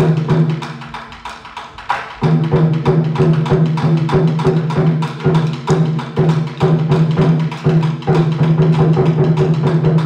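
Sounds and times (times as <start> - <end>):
taiko drum ensemble: 0.0 - 10.0
big drums ringing: 2.2 - 10.0.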